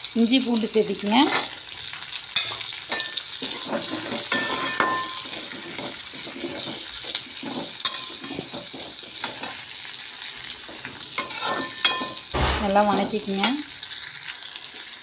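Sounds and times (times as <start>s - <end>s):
shallots sizzling in hot oil: 0.0s - 15.0s
steel ladle scraping a pan: 2.3s - 9.8s, 10.5s - 14.2s.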